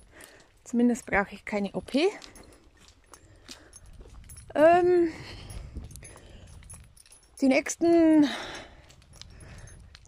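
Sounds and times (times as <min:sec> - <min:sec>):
woman speaking: 0:00.7 - 0:02.3, 0:04.5 - 0:05.3, 0:07.4 - 0:08.6
footsteps on leafy forest path: 0:02.0 - 0:04.3.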